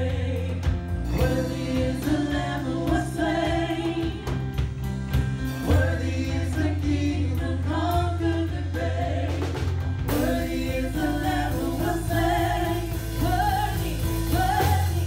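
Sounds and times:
women singing together: 0.0s - 4.6s, 5.6s - 15.0s
gospel band playing: 0.0s - 15.0s.

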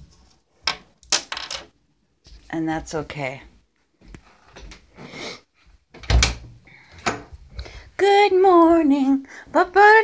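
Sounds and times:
interior door thudding shut: 6.0s - 7.3s
woman singing: 8.0s - 10.0s.

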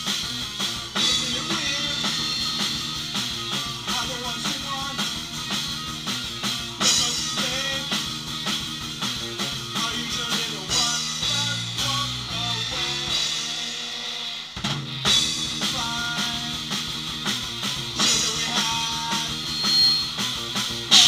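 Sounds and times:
bass guitar: 0.0s - 21.0s
drum kit beat: 0.0s - 21.0s
electric guitar: 0.0s - 21.0s.

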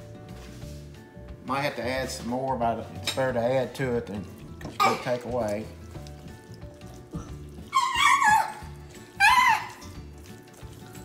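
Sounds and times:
child squealing: 7.7s - 9.8s.

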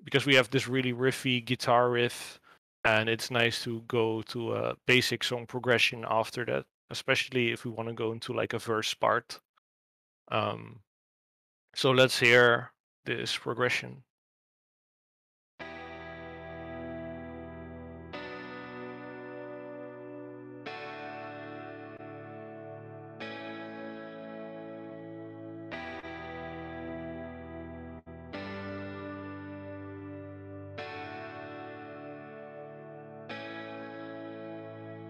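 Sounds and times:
clean electric guitar chords ringing: 15.6s - 35.0s.

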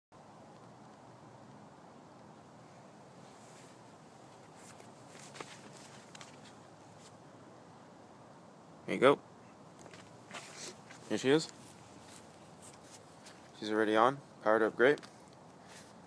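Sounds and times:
outdoor background hiss: 0.2s - 16.0s
soft clicks and rustles: 0.4s - 7.2s, 9.7s - 13.6s, 14.8s - 16.0s.

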